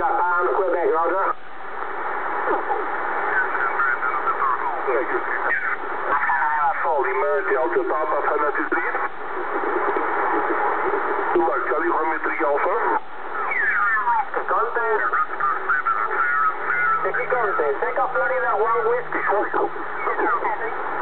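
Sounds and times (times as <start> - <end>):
voices over radio receiver: 0.0 - 1.4, 2.1 - 21.0
radio band hiss: 0.0 - 21.0.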